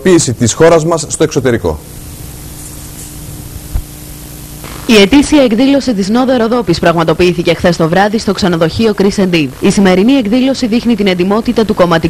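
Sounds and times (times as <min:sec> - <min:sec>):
hiss and electrical hum: 0:00.0 - 0:12.0.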